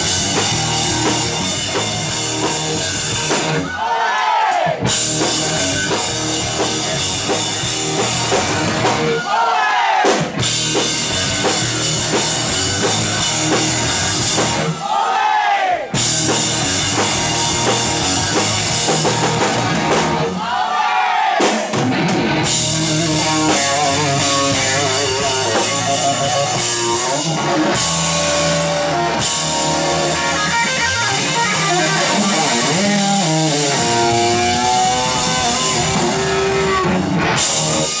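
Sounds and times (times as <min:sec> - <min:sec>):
electric guitar lead: 0:00.0 - 0:03.7, 0:04.8 - 0:09.2, 0:10.4 - 0:14.8, 0:16.0 - 0:20.4, 0:21.8 - 0:38.0
live rock band playing: 0:00.0 - 0:03.8, 0:04.7 - 0:09.3, 0:10.0 - 0:14.8, 0:15.9 - 0:20.4, 0:21.4 - 0:38.0.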